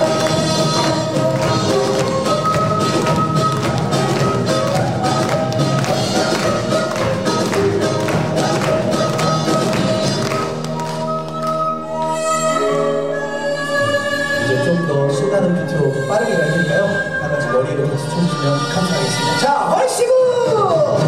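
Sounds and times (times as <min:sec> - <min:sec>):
traditional orchestra playing: 0:00.0 - 0:20.2.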